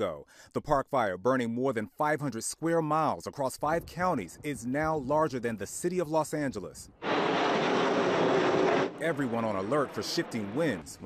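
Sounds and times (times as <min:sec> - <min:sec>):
jet engines roaring: 0:07.0 - 0:11.0.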